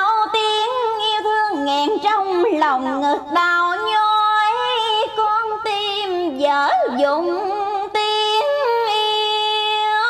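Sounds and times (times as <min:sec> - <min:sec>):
karaoke backing track: 0:00.0 - 0:10.0.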